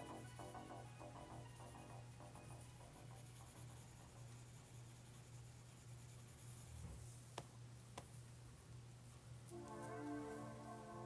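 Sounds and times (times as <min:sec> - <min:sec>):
stylus tapping screen: 0:00.0 - 0:04.5
stylus strokes on glass screen: 0:00.0 - 0:11.0.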